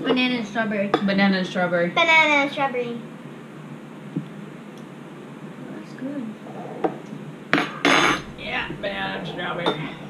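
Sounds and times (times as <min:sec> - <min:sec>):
voices: 0:00.0 - 0:03.1, 0:08.2 - 0:10.0.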